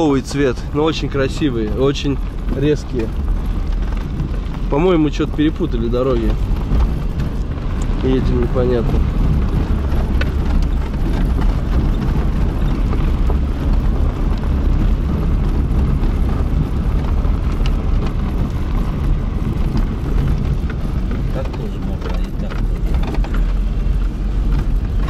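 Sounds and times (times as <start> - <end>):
car rumbling on dirt road: 0.0 - 25.0.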